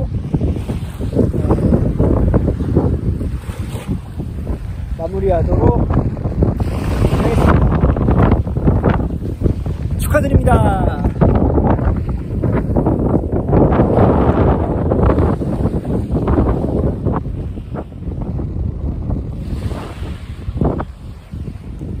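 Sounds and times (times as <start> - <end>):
surf: 0.0 - 22.0
wind buffeting microphone: 0.0 - 22.0.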